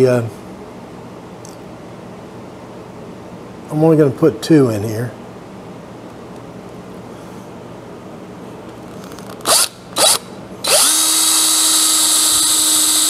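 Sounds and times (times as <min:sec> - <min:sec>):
cordless drill boring into wood: 0:09.5 - 0:13.0.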